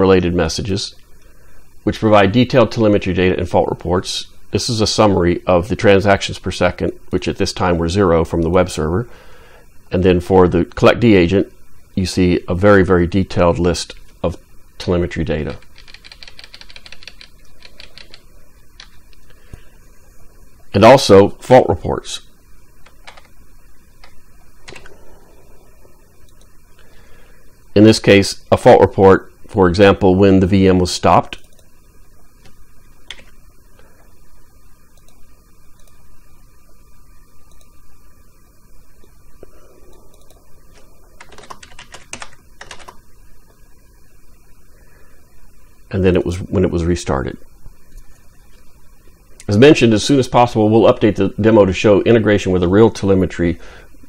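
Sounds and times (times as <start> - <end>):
keyboard keys clicking: 15.6 - 18.2, 41.2 - 43.0.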